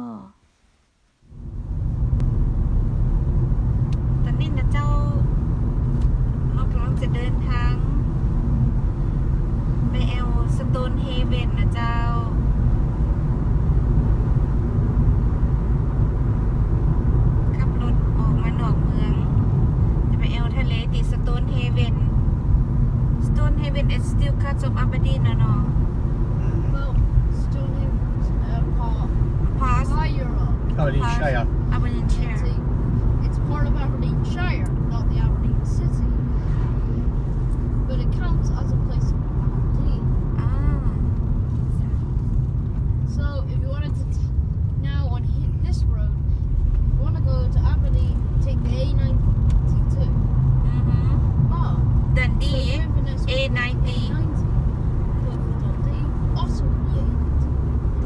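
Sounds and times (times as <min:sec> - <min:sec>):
people talking: 0:00.0 - 0:00.3, 0:04.3 - 0:05.2, 0:06.5 - 0:07.9, 0:09.9 - 0:12.4, 0:17.6 - 0:19.3, 0:20.1 - 0:22.0, 0:23.2 - 0:25.7, 0:26.4 - 0:32.6, 0:33.2 - 0:36.3, 0:37.8 - 0:39.1, 0:39.7 - 0:41.0, 0:41.7 - 0:42.0, 0:43.1 - 0:46.2, 0:47.0 - 0:54.4, 0:55.2 - 0:57.3
car engine and tyres rumbling: 0:00.4 - 0:58.0.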